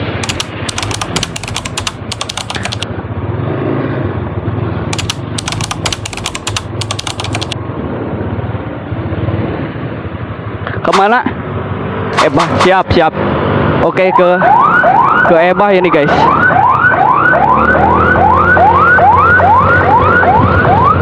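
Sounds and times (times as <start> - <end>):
fast rattling clicks: 0.0 - 2.8, 4.9 - 7.6.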